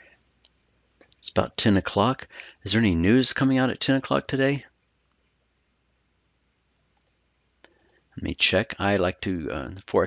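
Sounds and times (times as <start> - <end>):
faint clicks: 0.0 - 1.3, 6.9 - 8.0.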